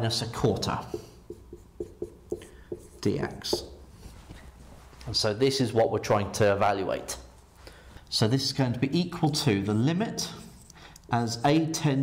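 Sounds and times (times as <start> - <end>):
marker writing on whiteboard: 0.6 - 4.0.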